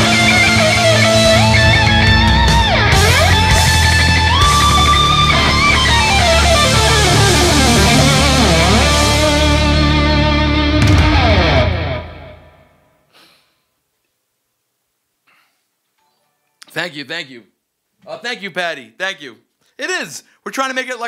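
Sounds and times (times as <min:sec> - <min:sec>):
steady bass: 0:00.0 - 0:12.4
electric guitar bent notes: 0:00.0 - 0:12.8.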